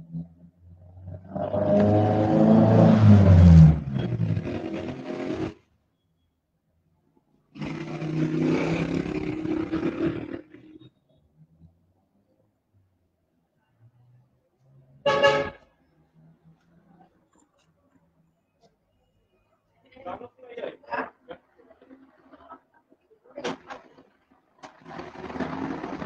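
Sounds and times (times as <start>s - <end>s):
dinosaur roar: 1.0s - 3.9s, 7.6s - 10.4s.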